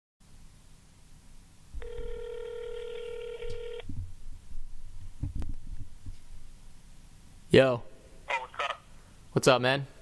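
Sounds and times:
telephone ringback tone: 1.8 - 3.8.

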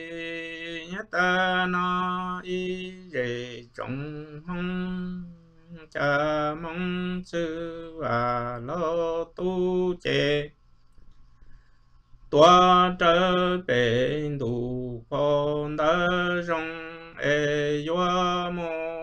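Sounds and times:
man singing unaccompanied: 0.0 - 10.6, 12.3 - 19.0.

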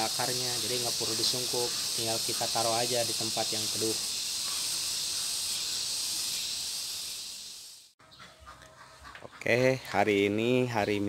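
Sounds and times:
insects shrilling: 0.0 - 8.0.

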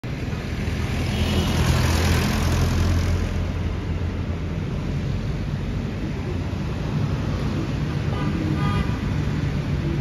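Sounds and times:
street traffic rumble: 0.0 - 10.0
vehicle passing close: 0.4 - 10.0.

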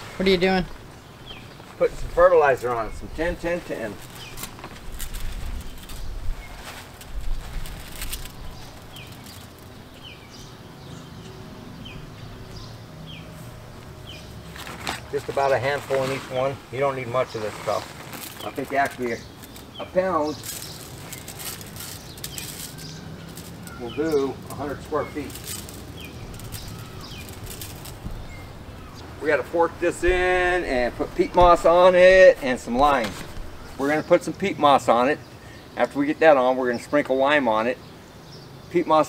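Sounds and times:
fertilizer granules rustling: 0.0 - 10.6, 13.2 - 35.1
birds chirping: 0.0 - 39.0.

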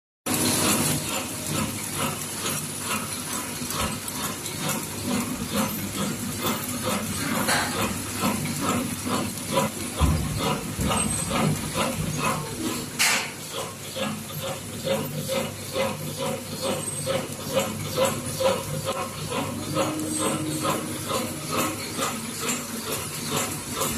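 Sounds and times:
packaging machine rhythmic ticking: 0.3 - 23.9.

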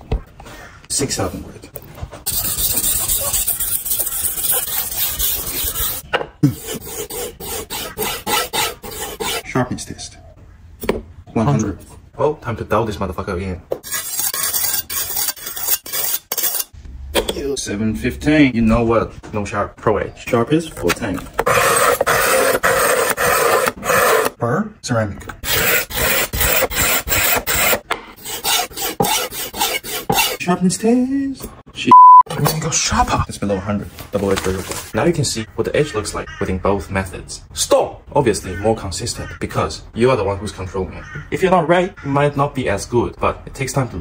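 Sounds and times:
knife scraping on whetstone: 2.3 - 9.4, 13.8 - 16.8, 21.5 - 24.3, 25.5 - 30.4.

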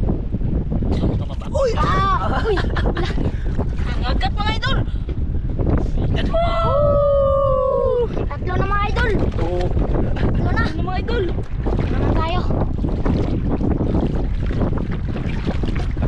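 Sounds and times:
wind buffeting microphone: 0.0 - 16.0
seawater sloshing around legs: 8.2 - 16.0.

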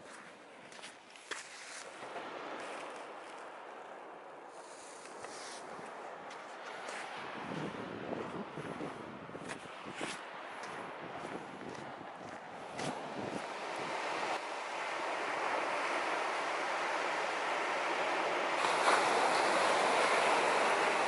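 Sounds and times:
surf breaking on beach: 1.9 - 21.0
wind buffeting microphone: 2.0 - 21.0.

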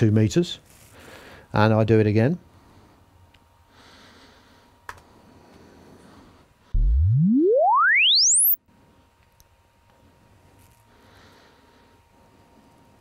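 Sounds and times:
sine sweep tone from loudspeaker: 6.8 - 8.6.

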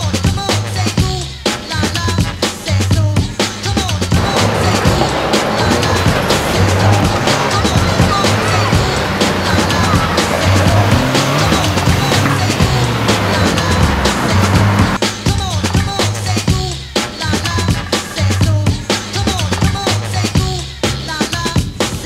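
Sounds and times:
backing music with steady beat: 0.0 - 22.0
tyres squealing on asphalt: 3.5 - 15.0, 17.1 - 20.5
car engine running: 4.2 - 15.0.

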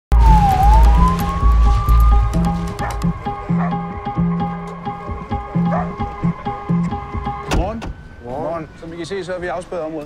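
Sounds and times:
police siren wailing: 0.1 - 4.6
film score with pulsing bass: 0.1 - 7.5.

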